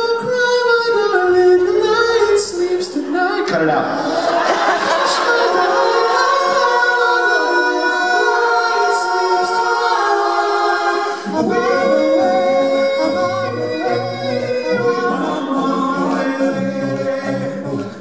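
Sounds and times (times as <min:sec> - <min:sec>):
male group singing in harmony: 0:00.0 - 0:18.0.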